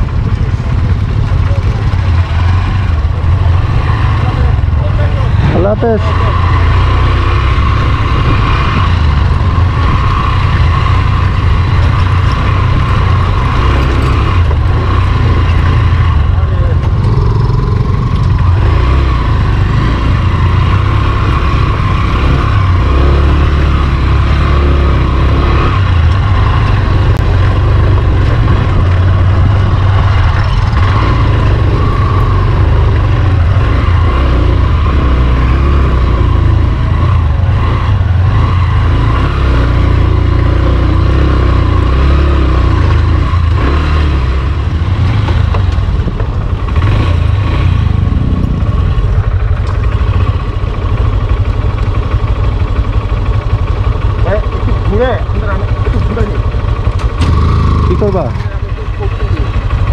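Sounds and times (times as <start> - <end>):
wind rumble on microphone: 0.0 - 5.6, 7.7 - 17.3, 26.0 - 33.6
motorcycle engine running: 0.0 - 59.9.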